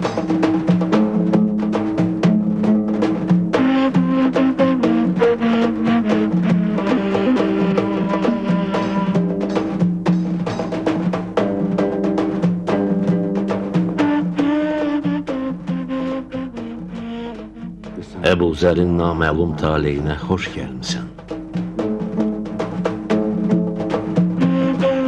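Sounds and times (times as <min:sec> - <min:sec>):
fast steady drumming: 0:00.0 - 0:25.0.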